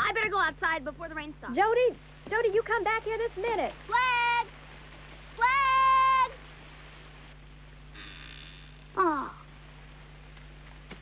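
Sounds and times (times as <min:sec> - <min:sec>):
young deer bleat: 0:07.9 - 0:09.5.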